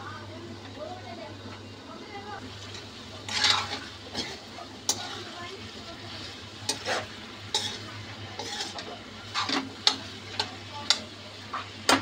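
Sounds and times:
food sizzling in a pan: 0.0 - 12.0
spoon scraping metal pan: 3.2 - 5.3, 6.2 - 11.7.

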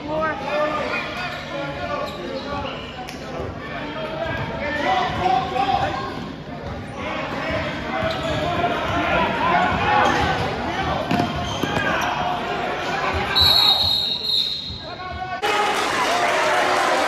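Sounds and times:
voices echoing in a hall: 0.0 - 17.0.

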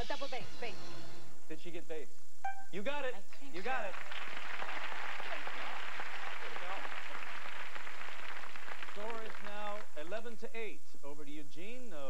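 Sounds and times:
audience applause: 3.6 - 10.1.

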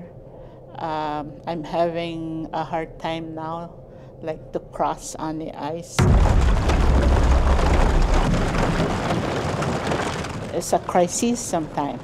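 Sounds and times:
boat pushing through ice: 6.4 - 11.2.

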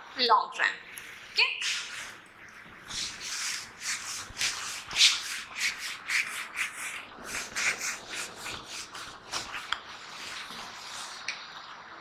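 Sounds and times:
duster rubbing on whiteboard: 1.6 - 11.3.

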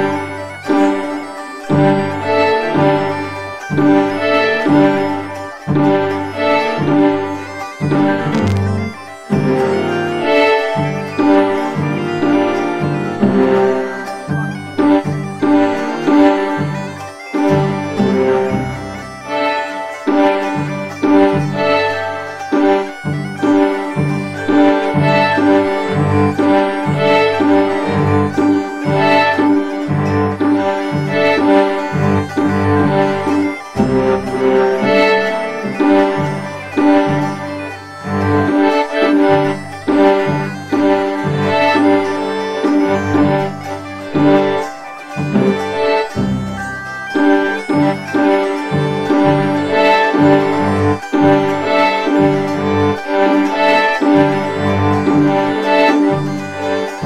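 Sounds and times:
bagpipe playing a tune: 0.0 - 57.0
plucked string instrument: 0.0 - 57.0.

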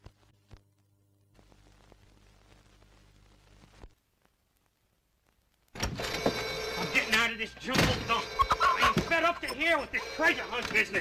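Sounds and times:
dense background sound: 6.6 - 11.0
person speaking: 6.8 - 11.0.

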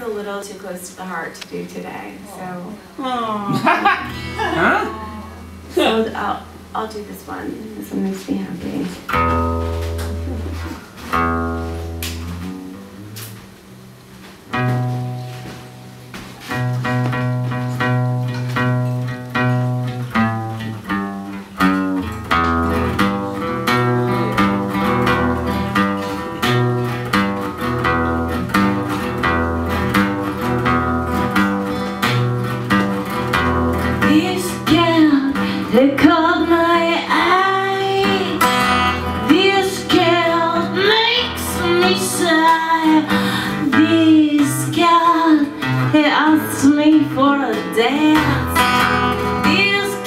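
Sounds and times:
acoustic guitar strumming: 3.5 - 50.0.

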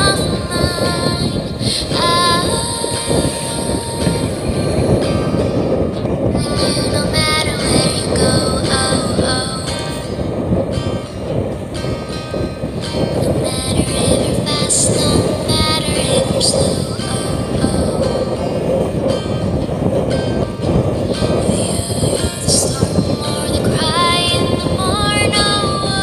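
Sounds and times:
motorboat motor rumbling: 0.0 - 26.0
music: 0.0 - 26.0
rushing water: 0.0 - 26.0
wind: 0.0 - 26.0.

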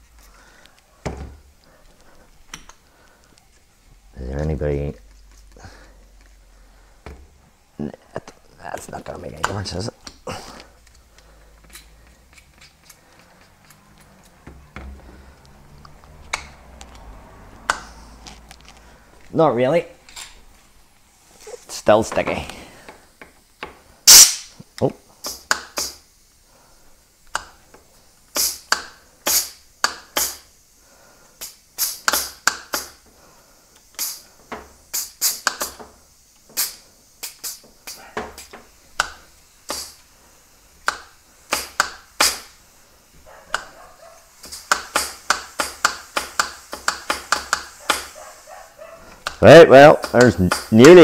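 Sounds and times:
compressed air blasts: 8.4 - 19.2, 20.1 - 51.0.

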